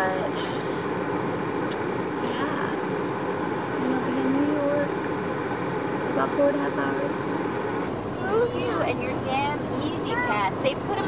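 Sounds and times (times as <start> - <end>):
car cabin engine hum: 0.0 - 11.0.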